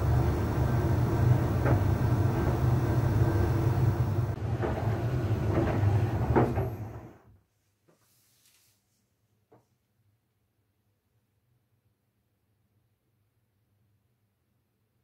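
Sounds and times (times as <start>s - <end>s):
tumble dryer humming: 0.0s - 7.1s.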